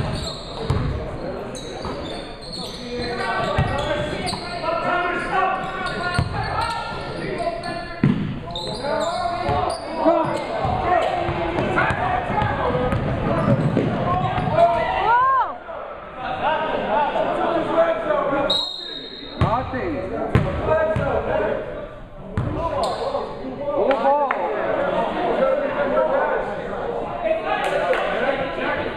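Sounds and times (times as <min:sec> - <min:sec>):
indistinct shouting and chatter: 0:00.0 - 0:20.0.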